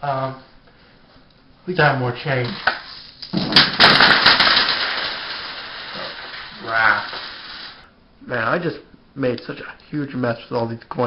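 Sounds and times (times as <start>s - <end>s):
coins spilling and clattering: 2.8s - 7.8s.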